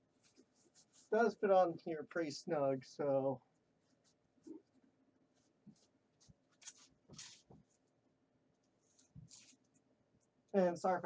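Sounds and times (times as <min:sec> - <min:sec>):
fabric brushing and rustling: 0:05.3 - 0:07.9.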